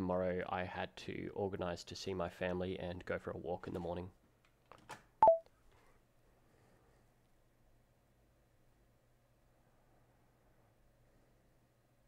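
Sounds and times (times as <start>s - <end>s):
two-note electronic beep: 5.2s - 5.4s.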